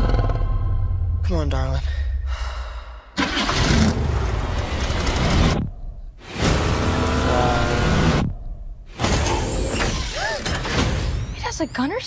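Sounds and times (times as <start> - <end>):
movie trailer soundtrack: 0.0 - 12.0
car engine revving: 3.2 - 8.4.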